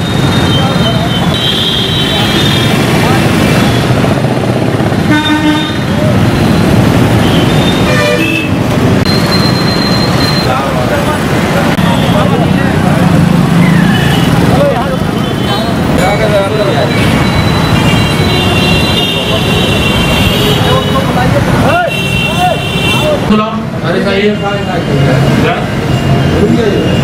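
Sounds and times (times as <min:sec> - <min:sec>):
vehicle horns tooting: 0:00.0 - 0:04.0, 0:04.9 - 0:10.6, 0:11.7 - 0:12.8, 0:13.7 - 0:16.0, 0:16.7 - 0:25.2
voices: 0:00.0 - 0:08.8, 0:09.4 - 0:27.0
traffic engines din: 0:00.0 - 0:27.0.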